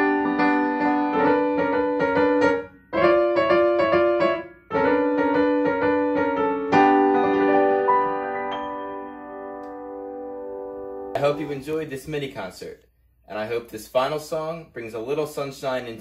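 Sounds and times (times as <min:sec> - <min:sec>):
upright piano chords: 0:00.0 - 0:11.7.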